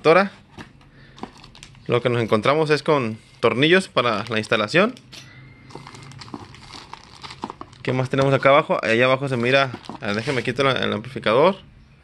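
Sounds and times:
plastic packaging crinkling: 1.1 - 2.0, 4.0 - 4.9, 5.7 - 10.7.

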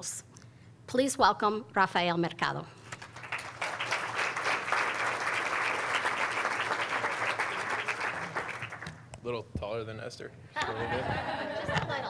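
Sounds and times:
audience applauding: 2.9 - 9.1.

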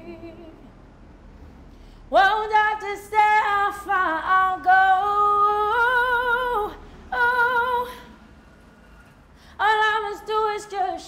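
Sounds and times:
woman singing unaccompanied: 0.0 - 0.7, 2.1 - 8.1, 9.6 - 11.0.

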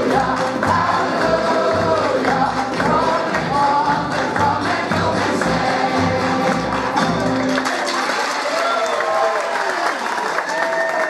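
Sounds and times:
song music: 0.0 - 8.1
audience applause: 0.0 - 11.0
cheering: 6.8 - 11.0.

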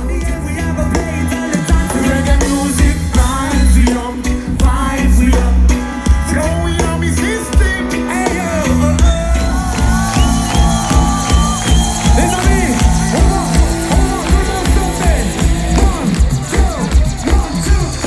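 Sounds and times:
person singing: 0.0 - 11.0, 12.1 - 18.0
heavy pulsing bass beat: 8.4 - 18.0.

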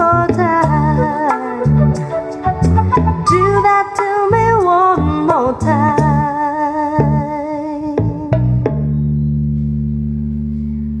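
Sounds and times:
pop love song over speakers: 0.0 - 8.6.

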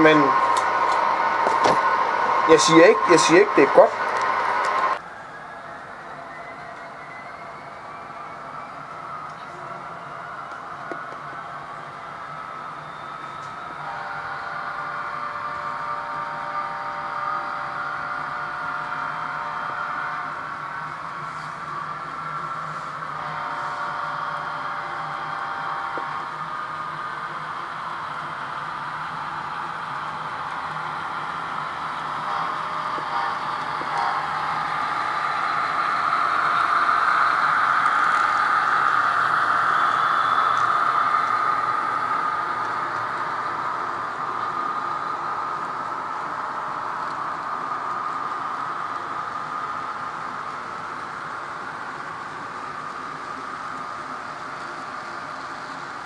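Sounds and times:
model train motor whirring: 0.0 - 5.0, 23.1 - 53.9
wheels rolling on rails: 0.0 - 5.0, 25.0 - 56.0.

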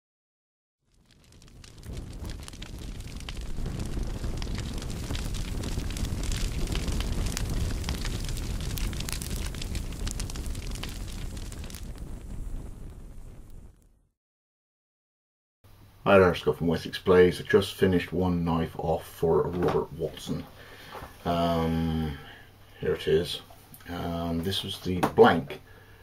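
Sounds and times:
fire roaring and crackling: 0.8 - 14.1, 18.4 - 24.8.

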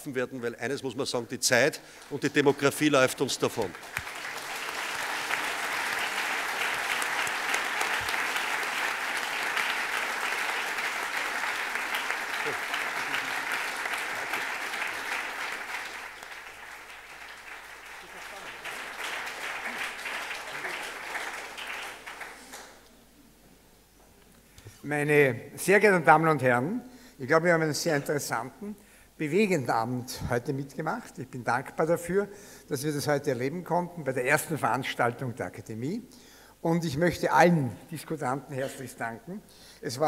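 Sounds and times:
audience applauding: 2.0 - 22.8.

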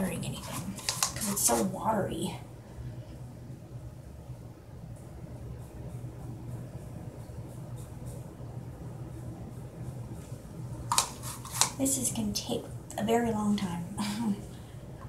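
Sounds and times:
dye brush ticks and rustles: 0.0 - 1.8, 10.9 - 13.1
low hum: 0.0 - 15.0.

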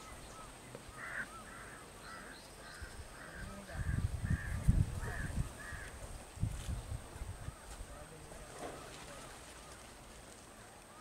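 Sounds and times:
crows cawing: 0.3 - 6.0.

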